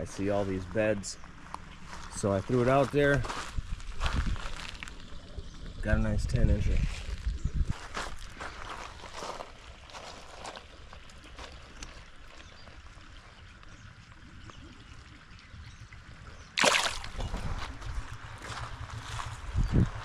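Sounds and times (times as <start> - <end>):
water trickling: 9.8 - 18.3
fish splashing into water: 16.5 - 17.5.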